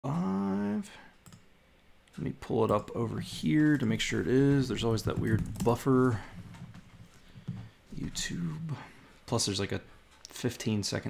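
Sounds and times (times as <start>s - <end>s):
man saying uhh: 0.0s - 1.1s, 8.1s - 9.0s.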